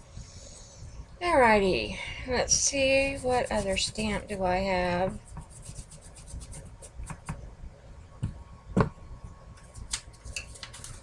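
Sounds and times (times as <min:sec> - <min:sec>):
hands rubbing and sliding paper: 0:03.0 - 0:04.3, 0:05.1 - 0:07.4, 0:09.6 - 0:11.0.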